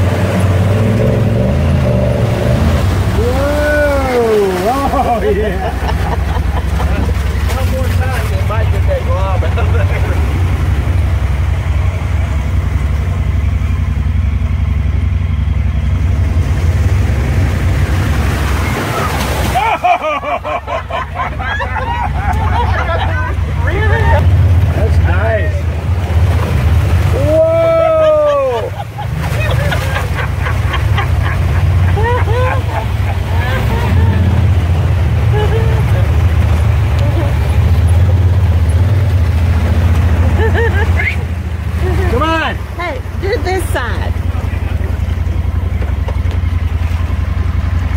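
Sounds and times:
off-road vehicle engine rumble: 0:00.0 - 0:47.9
water splashing around wheels: 0:00.0 - 0:47.9
voice-like calls and whoops: 0:03.1 - 0:05.1, 0:18.5 - 0:20.0, 0:27.0 - 0:34.6, 0:40.5 - 0:41.4.

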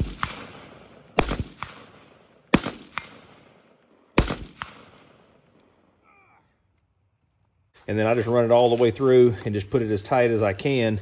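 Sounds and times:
echoing gunshots: 0:00.0 - 0:05.5.

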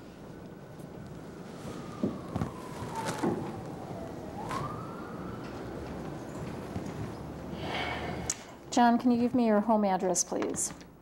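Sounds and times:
emergency vehicle siren wailing: 0:01.0 - 0:07.5.

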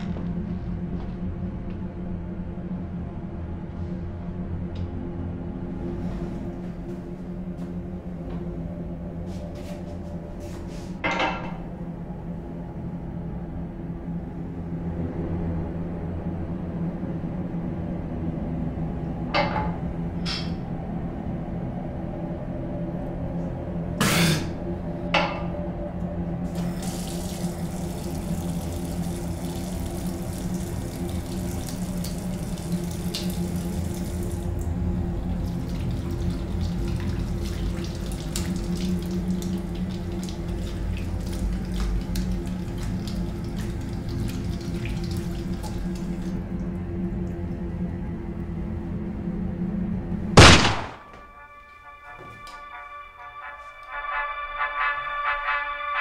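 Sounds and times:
water splashing on face: 0:35.4 - 0:46.4.

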